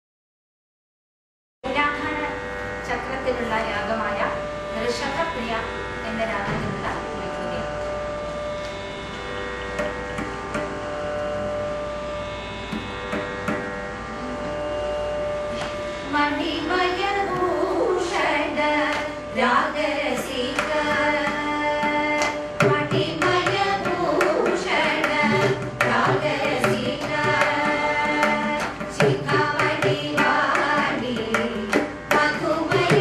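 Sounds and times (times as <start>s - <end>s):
buzzing drone: 1.6s - 33.0s
women singing gliding phrases: 16.1s - 33.0s.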